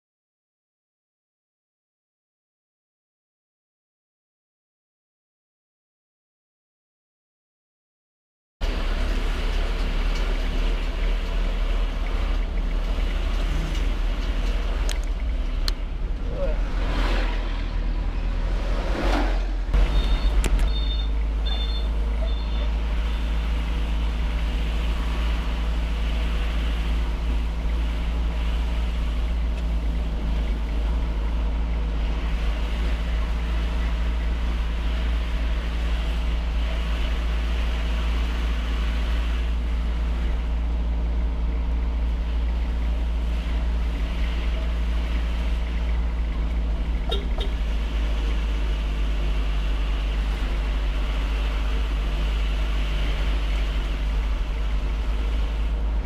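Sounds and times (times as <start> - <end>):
vehicle engine hum: 8.6 - 56.0
short high beeps: 19.8 - 22.7.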